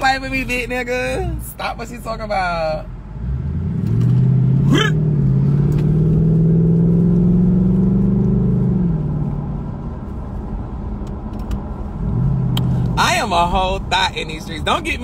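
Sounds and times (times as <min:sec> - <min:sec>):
car engine and road noise: 0:00.0 - 0:15.0.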